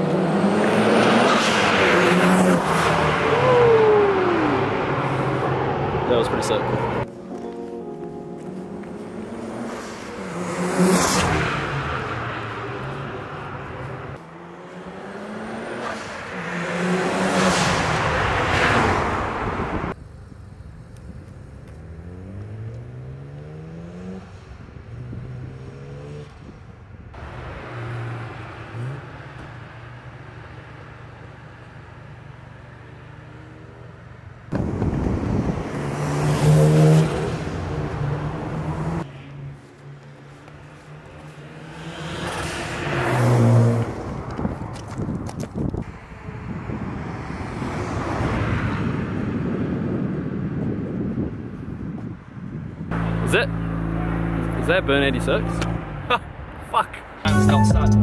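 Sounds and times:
rotary engine car passing: 0:09.0 - 0:26.5, 0:35.3 - 0:44.7.

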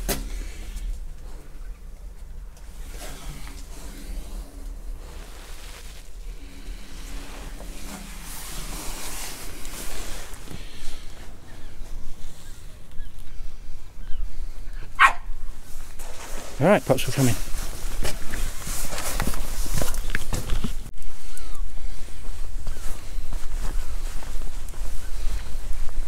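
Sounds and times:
steady low rumble: 0:00.0 - 0:16.0
dog barking: 0:14.9 - 0:15.3.

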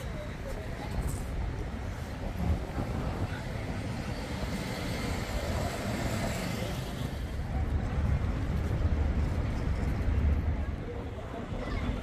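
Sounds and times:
city road traffic rumble: 0:00.0 - 0:12.0.

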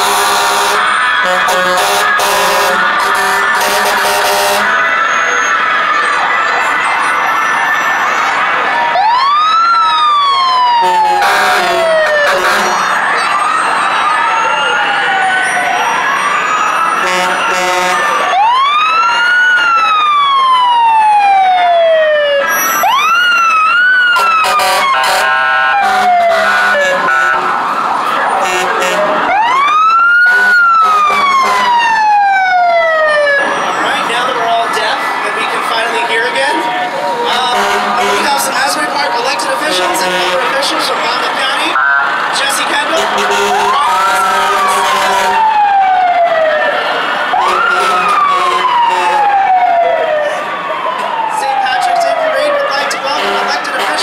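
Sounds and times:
horn blasts: 0:00.0 - 0:04.8, 0:10.8 - 0:13.0, 0:17.0 - 0:18.2, 0:24.2 - 0:27.5, 0:28.4 - 0:29.2, 0:30.2 - 0:31.8, 0:37.3 - 0:38.5, 0:39.7 - 0:40.5, 0:42.9 - 0:45.4, 0:47.4 - 0:49.3
fire truck sirens wailing: 0:00.0 - 0:54.0.

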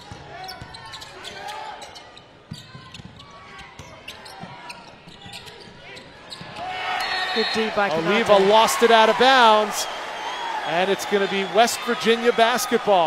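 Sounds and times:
sneaker squeaks: 0:00.0 - 0:07.7
crowd and player voices: 0:00.0 - 0:13.0.

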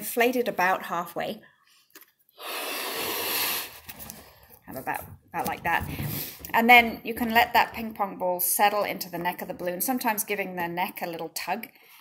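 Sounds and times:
person blowing into a balloon: 0:02.3 - 0:03.9.

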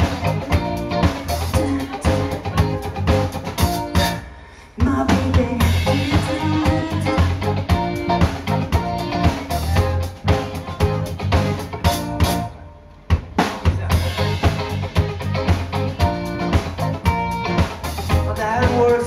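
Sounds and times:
drum kit: 0:00.0 - 0:19.0
live rock band: 0:00.0 - 0:19.0.

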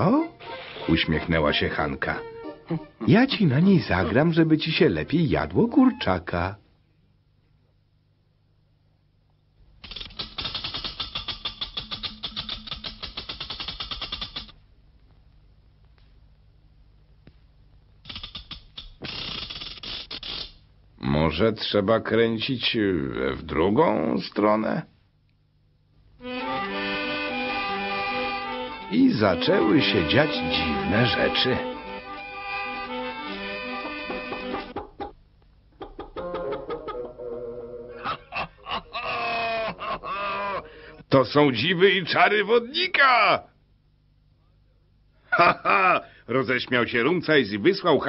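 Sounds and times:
barrel organ crank clicks and rattle: 0:09.8 - 0:14.6, 0:18.0 - 0:19.9
cartoon chicken clucks: 0:34.1 - 0:35.2, 0:35.8 - 0:37.4.

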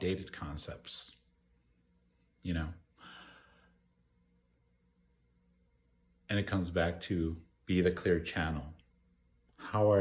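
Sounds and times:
man's soft breath sigh: 0:03.0 - 0:03.8.

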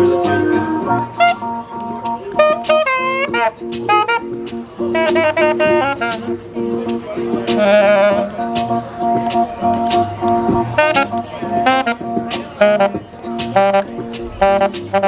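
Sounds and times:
saxophone melody: 0:00.0 - 0:15.0.

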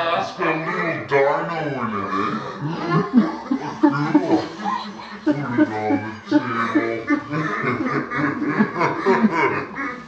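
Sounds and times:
people laughing: 0:00.0 - 0:10.0.

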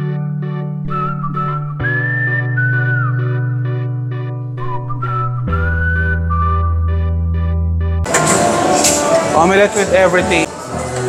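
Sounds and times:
electronic music with whistle-like lead: 0:00.1 - 0:07.6.

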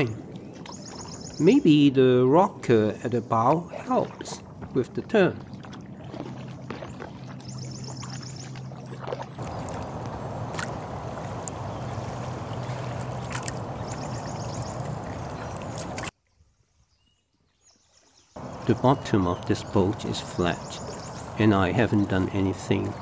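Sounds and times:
paddle stroking through water: 0:00.0 - 0:01.4, 0:03.4 - 0:16.1, 0:18.4 - 0:23.0
water swishing along kayak hull: 0:00.0 - 0:23.0.

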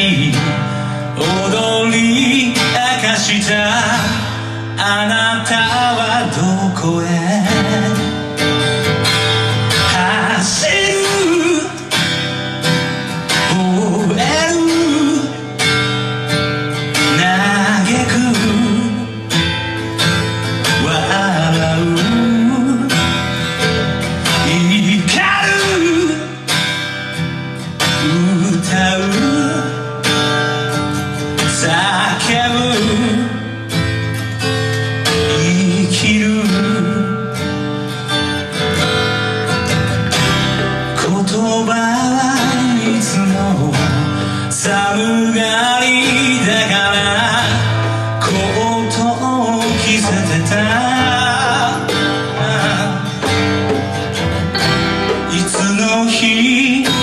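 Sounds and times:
drums: 0:00.0 - 0:57.0
man singing: 0:00.0 - 0:57.0
strummed acoustic guitar: 0:00.0 - 0:57.0
upright bass: 0:46.2 - 0:57.0.

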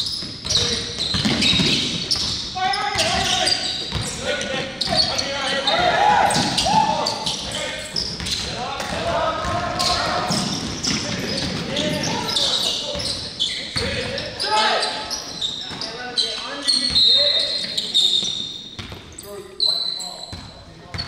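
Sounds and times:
basketballs bouncing on wooden floor: 0:00.0 - 0:14.2, 0:18.2 - 0:19.2, 0:20.3 - 0:21.0
sneaker squeals: 0:00.0 - 0:21.0
players' voices: 0:00.4 - 0:21.0.

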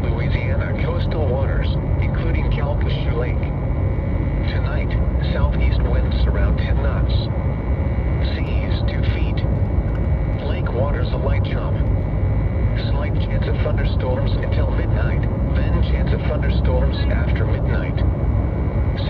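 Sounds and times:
synthesized voice over radio speaker: 0:00.0 - 0:09.6, 0:10.2 - 0:18.1, 0:18.8 - 0:19.0
steady low hum: 0:00.0 - 0:19.0.

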